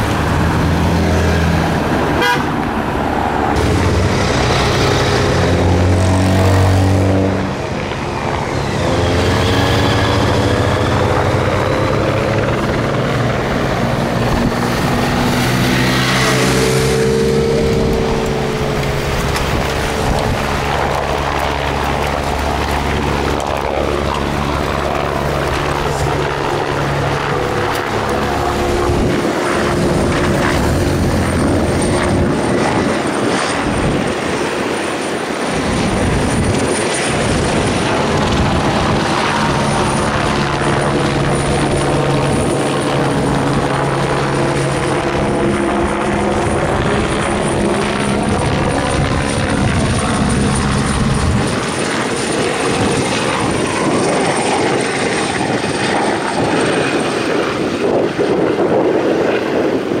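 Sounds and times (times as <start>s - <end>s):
helicopter flying overhead: 0.0s - 60.0s.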